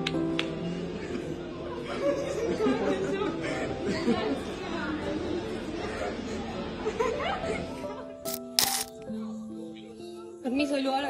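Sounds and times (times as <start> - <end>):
excited chatter of voices: 1.4 - 7.8.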